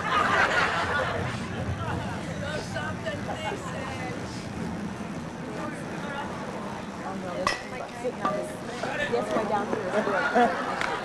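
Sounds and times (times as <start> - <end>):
spectators chatting: 0.0 - 11.0.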